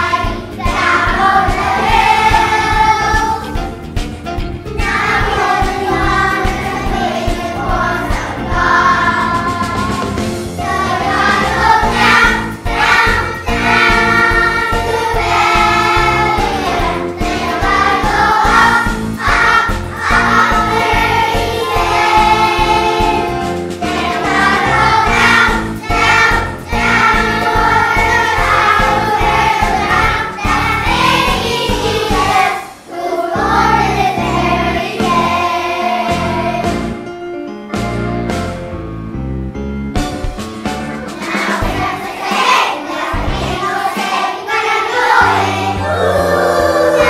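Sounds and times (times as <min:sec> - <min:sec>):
children's choir singing: 0:00.0 - 0:03.7, 0:04.8 - 0:37.0, 0:40.8 - 0:47.0
instrumental accompaniment with beat: 0:00.0 - 0:47.0.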